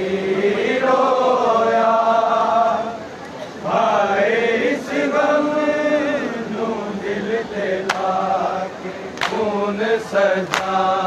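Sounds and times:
men chanting a lament: 0:00.0 - 0:03.0, 0:03.6 - 0:11.0.

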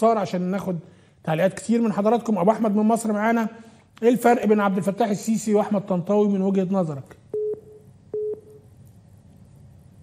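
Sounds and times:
telephone line beep: 0:07.3 - 0:08.6.

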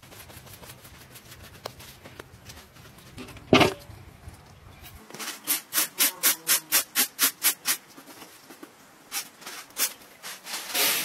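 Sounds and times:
grain rustling in a metal tray: 0:09.1 - 0:11.0.

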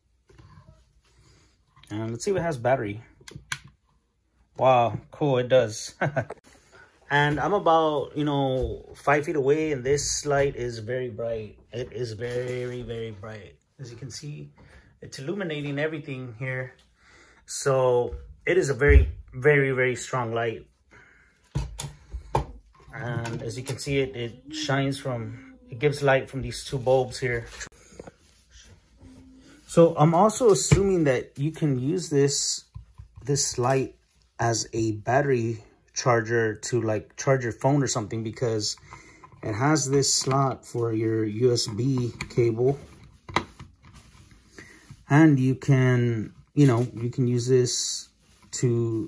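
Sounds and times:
faint handling noise: 0:38.7 - 0:45.2.

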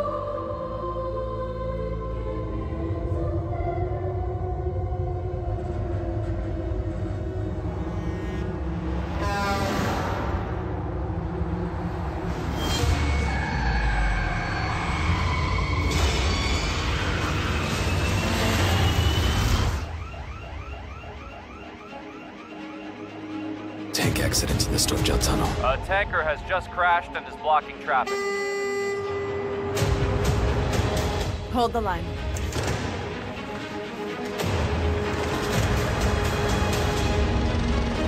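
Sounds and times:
heavy truck rumbling in tunnel: 0:01.9 - 0:20.1
truck air horn blasting: 0:07.8 - 0:10.6, 0:28.0 - 0:30.4.

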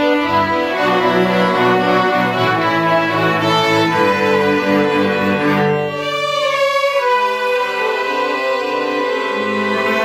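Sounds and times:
string orchestra playing held chords: 0:00.0 - 0:10.0.

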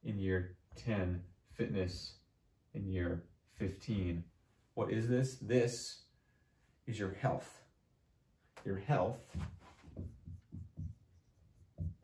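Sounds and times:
marker writing on a whiteboard: 0:08.6 - 0:12.0.

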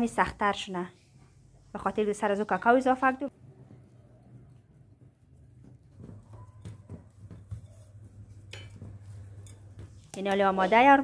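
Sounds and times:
dough rubbing against glass bowl: 0:00.2 - 0:11.0.

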